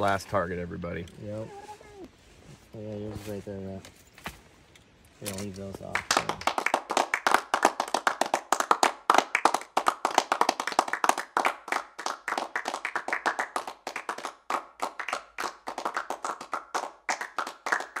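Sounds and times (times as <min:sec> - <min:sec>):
hands clapping: 0:05.8 - 0:18.0.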